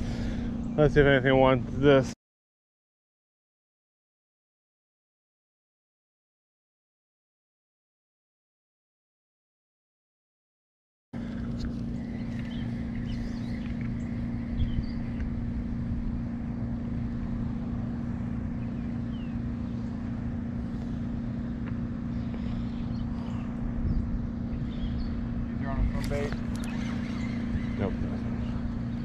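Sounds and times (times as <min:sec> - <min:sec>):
steady low hum: 0:00.0 - 0:02.2, 0:11.2 - 0:29.0
low rumbling noise: 0:11.2 - 0:29.0.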